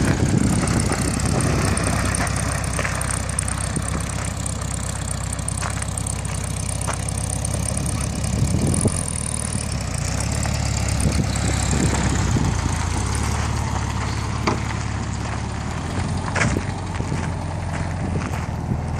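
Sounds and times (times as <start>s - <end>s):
car engine pulsing: 0.0s - 18.9s.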